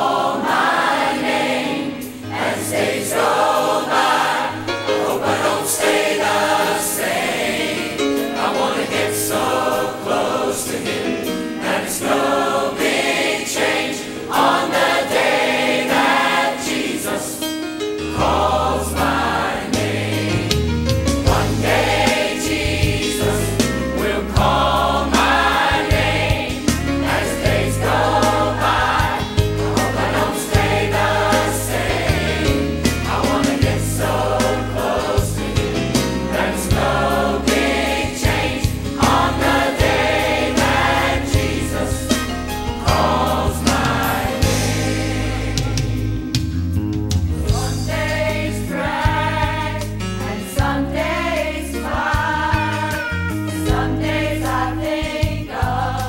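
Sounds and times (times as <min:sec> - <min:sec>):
choir singing gospel song: 0:00.0 - 0:56.0
instrumental accompaniment: 0:00.0 - 0:56.0
deep bass notes: 0:18.2 - 0:56.0.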